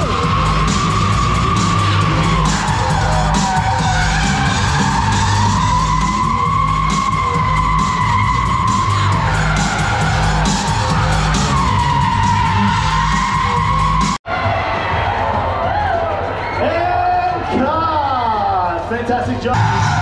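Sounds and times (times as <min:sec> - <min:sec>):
car tyres squealing: 0:00.0 - 0:14.2
music playing: 0:00.0 - 0:20.0.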